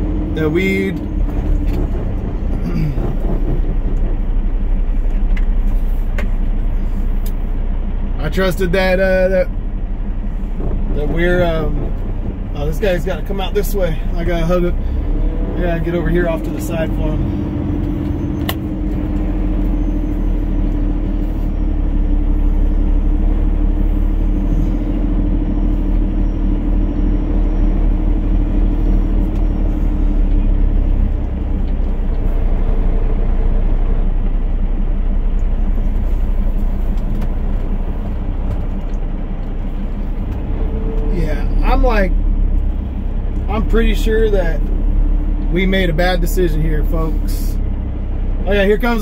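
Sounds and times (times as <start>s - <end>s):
diesel truck engine idling: 0.0s - 49.0s.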